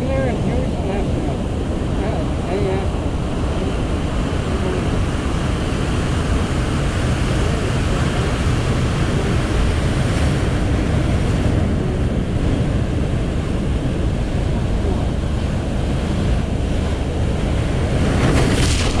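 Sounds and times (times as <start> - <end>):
surf washing among rocks: 0.0 - 19.0
wind buffeting microphone: 0.0 - 19.0.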